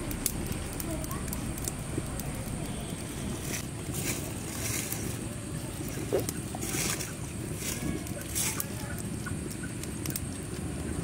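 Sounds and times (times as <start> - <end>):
seeds pattering onto stone: 0.0 - 5.3
low background rumble: 0.0 - 11.0.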